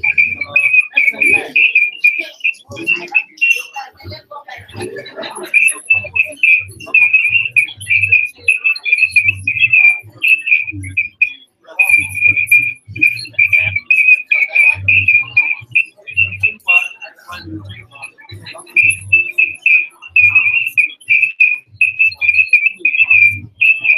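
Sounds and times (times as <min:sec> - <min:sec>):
distorted speech: 0:00.0 - 0:23.9.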